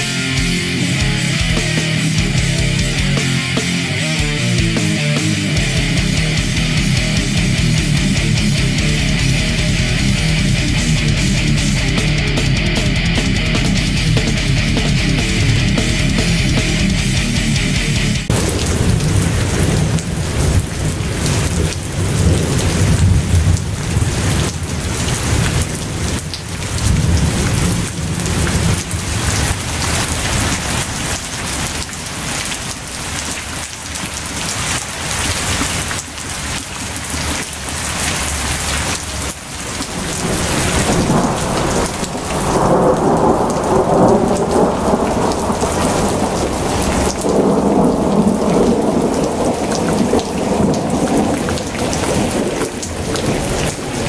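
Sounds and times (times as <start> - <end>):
heavy rain: 0.0 - 54.0
thunder rumbling: 5.6 - 17.5, 18.2 - 31.1, 39.8 - 54.0.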